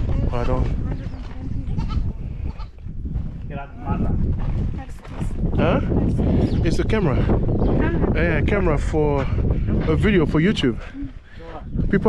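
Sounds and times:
wind rumbling on microphone: 0:00.0 - 0:12.0
goat bleating: 0:01.6 - 0:02.7.

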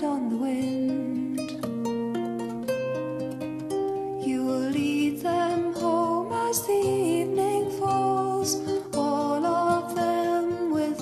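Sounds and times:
plucked strings: 0:00.0 - 0:11.0.

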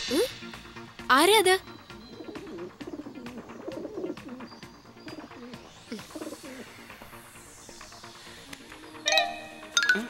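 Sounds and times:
pigeons cooing: 0:02.0 - 0:06.9.

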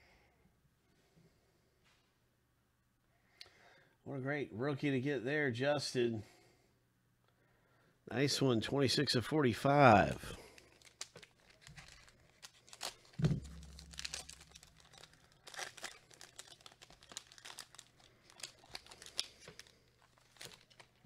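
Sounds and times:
foil wrapper tearing and crinkling: 0:10.0 - 0:21.0
cards being handled: 0:10.1 - 0:21.0
soft thump: 0:13.2 - 0:13.7.

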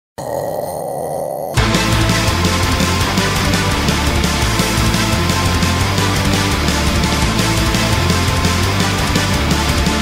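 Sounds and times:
loud heavy metal music: 0:01.6 - 0:10.0.

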